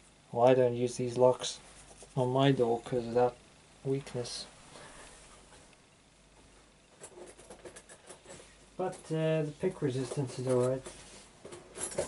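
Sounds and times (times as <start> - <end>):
low room hiss: 0.0 - 12.0
person speaking: 0.3 - 4.6, 8.8 - 11.0.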